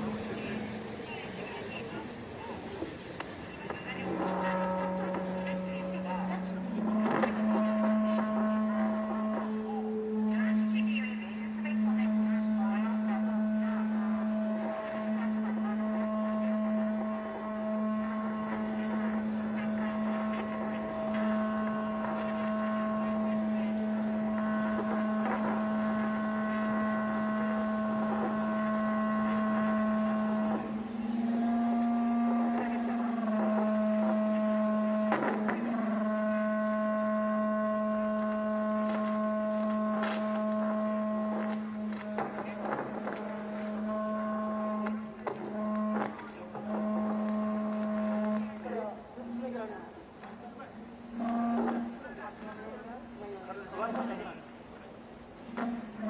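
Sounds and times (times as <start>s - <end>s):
low buzzing hum: 0.0s - 56.0s.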